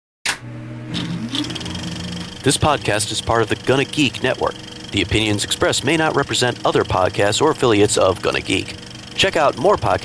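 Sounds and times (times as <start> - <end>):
low hum rising in pitch: 0.5 - 10.0.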